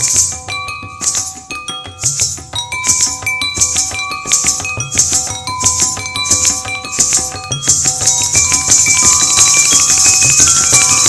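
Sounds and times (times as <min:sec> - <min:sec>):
ankle bells jingling: 0:00.0 - 0:11.0
porcelain bowls struck ringing: 0:00.0 - 0:11.0.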